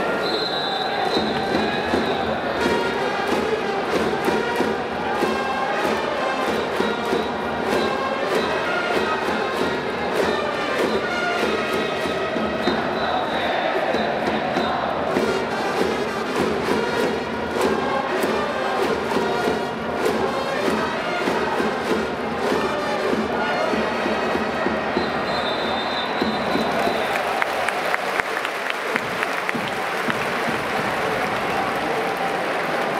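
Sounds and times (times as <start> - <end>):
crowd chanting: 0.0 - 16.4, 17.2 - 32.9
crowd cheering: 0.0 - 16.8, 20.6 - 32.9
hands clapping: 2.6 - 12.3, 26.0 - 32.9.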